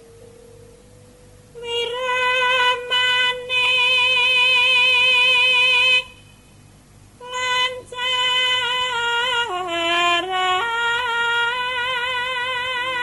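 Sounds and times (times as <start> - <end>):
woman singing long note: 1.6 - 6.3, 7.2 - 13.0.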